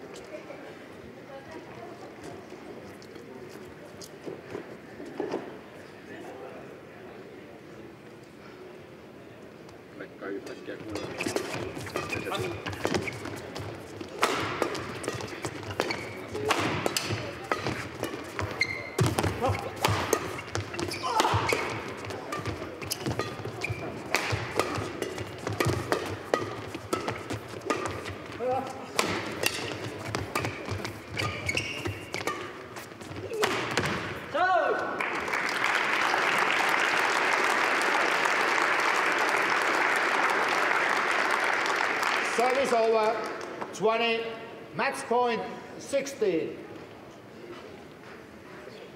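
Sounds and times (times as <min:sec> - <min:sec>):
shoes squeaking on court floor: 0:10.7 - 0:34.3
rackets hitting shuttlecock: 0:10.8 - 0:34.3.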